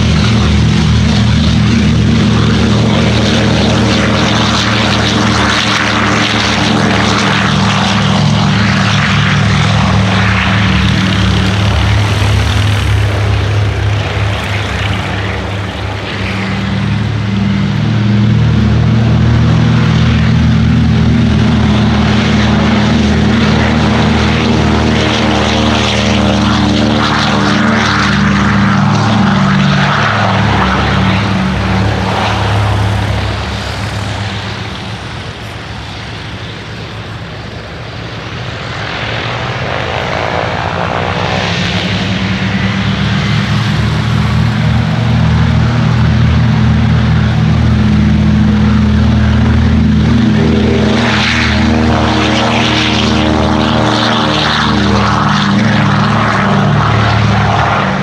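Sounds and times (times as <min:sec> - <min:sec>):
propeller aircraft engines droning: 0:00.0 - 0:58.0.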